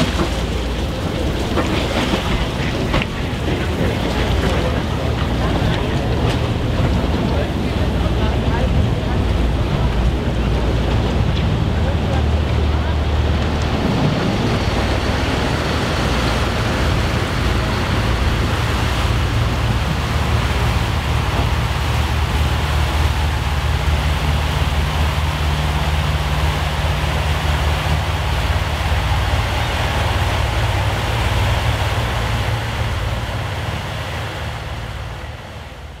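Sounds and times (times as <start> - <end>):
propellers churning water: 0.0 - 36.0
rushing water wash: 0.0 - 36.0
ship engines droning: 0.0 - 36.0.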